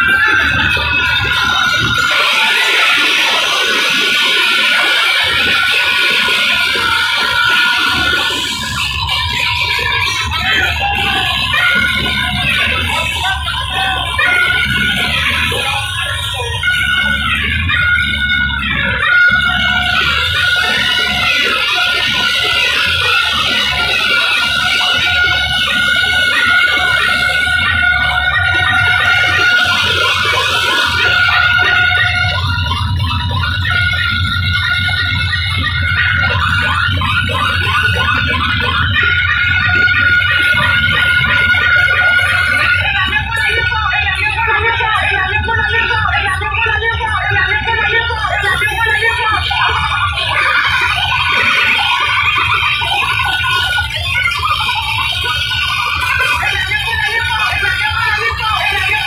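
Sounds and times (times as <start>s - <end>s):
high held synth tone: 0.0s - 59.0s
loud dance music with heavy bass: 0.0s - 59.0s.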